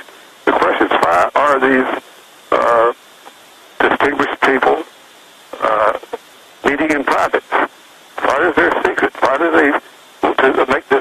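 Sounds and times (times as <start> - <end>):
man talking over telephone: 0.0 - 3.0, 3.8 - 4.9, 5.5 - 11.0.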